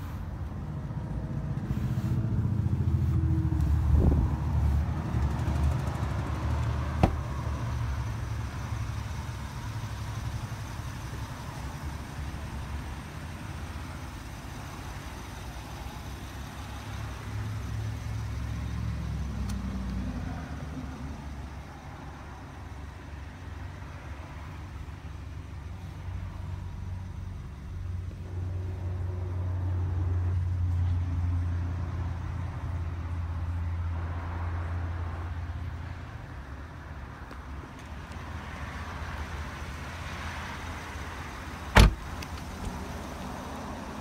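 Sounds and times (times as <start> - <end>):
car engine idling: 0.0 - 20.0, 36.7 - 44.0.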